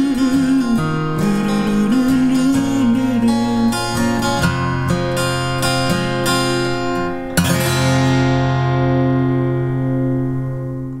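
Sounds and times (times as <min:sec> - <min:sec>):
acoustic guitar strummed chord: 0:00.0 - 0:11.0.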